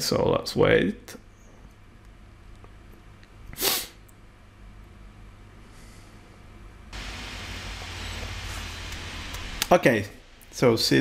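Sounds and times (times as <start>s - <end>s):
faint low hum: 0.0s - 11.0s
person sharp breath: 5.6s - 6.4s.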